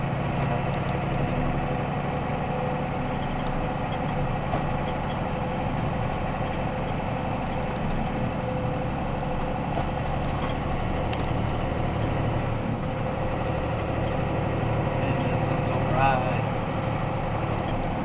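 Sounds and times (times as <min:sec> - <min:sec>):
truck engine and road noise: 0:00.0 - 0:18.0.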